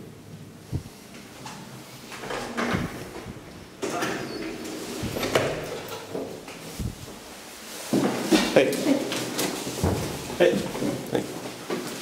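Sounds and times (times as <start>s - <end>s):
door thumps: 2.2s - 3.4s
elevator door clatter: 2.2s - 6.5s
elevator door scraping and rattling: 2.2s - 7.3s.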